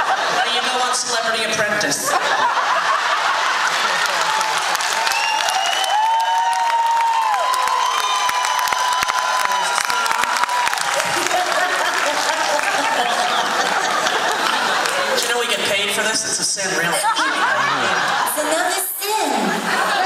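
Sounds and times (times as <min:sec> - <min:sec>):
audience applauding: 0:02.3 - 0:16.0
high whistles: 0:05.0 - 0:06.3.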